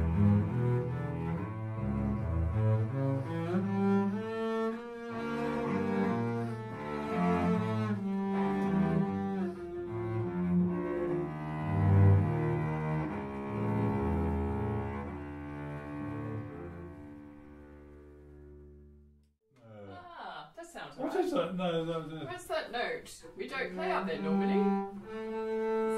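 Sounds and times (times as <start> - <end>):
cello: 0.0 - 19.0, 23.4 - 25.9
double bass bowing low notes: 0.0 - 19.9, 23.5 - 25.9.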